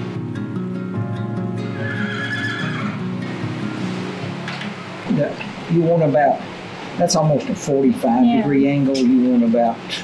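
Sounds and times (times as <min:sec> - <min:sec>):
background music: 0:00.0 - 0:10.0
horse whinnying: 0:01.8 - 0:03.1.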